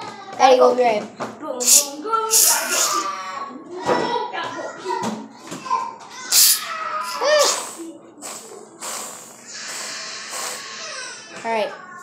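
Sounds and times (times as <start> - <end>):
aerosol can hissing: 1.6 - 3.1, 6.3 - 10.8
child crying out: 1.7 - 3.4, 6.3 - 7.7.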